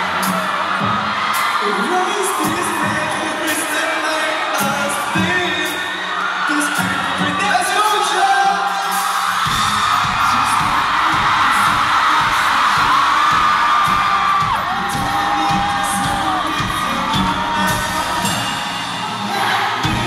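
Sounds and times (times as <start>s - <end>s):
audience screaming and singing: 0.0s - 20.0s
live pop-rock band: 0.0s - 20.0s
kick-drum beat: 9.4s - 18.6s, 19.8s - 20.0s.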